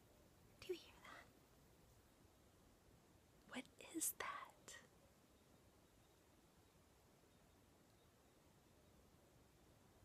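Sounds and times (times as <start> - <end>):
soft whispering: 0.6 - 1.4, 3.5 - 4.9.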